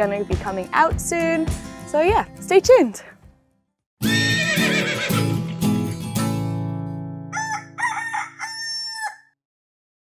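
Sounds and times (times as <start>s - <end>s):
horse whinnying: 4.0s - 5.5s.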